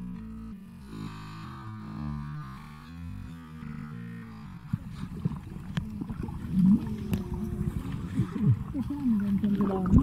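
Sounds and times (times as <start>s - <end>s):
small underwater clicks: 0.0s - 10.0s
underwater gurgling and bubbling: 0.0s - 10.0s.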